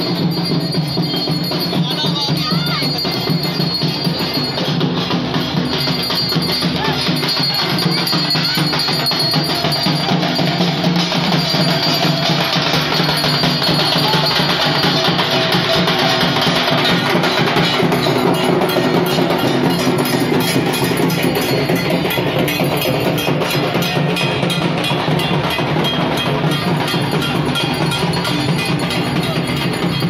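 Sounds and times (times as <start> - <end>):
drums beaten with sticks: 0.0 - 30.0.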